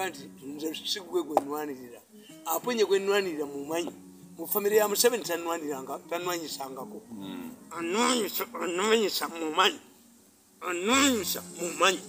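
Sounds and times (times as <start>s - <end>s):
man speaking: 0.0s - 9.8s, 10.6s - 12.0s.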